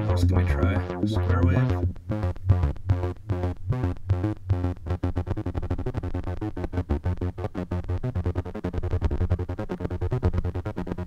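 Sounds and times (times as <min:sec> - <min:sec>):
synthesizer low repeating sequence: 0:00.0 - 0:11.0.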